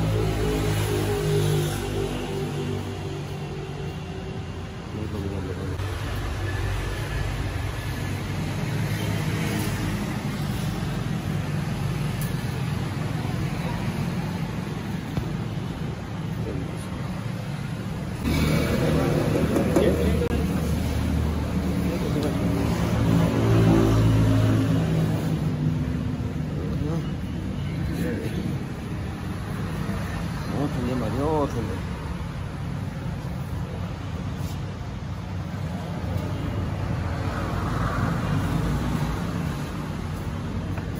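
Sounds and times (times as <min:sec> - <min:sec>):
people talking: 0:04.9 - 0:05.8, 0:18.8 - 0:20.6, 0:26.5 - 0:27.3.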